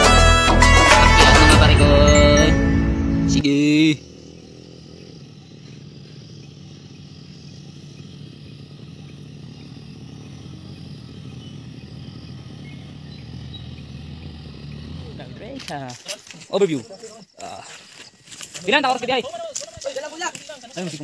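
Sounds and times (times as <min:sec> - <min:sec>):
motorcycle engine running: 0:00.0 - 0:17.0, 0:17.9 - 0:21.0
faint high chirp: 0:10.6 - 0:14.0.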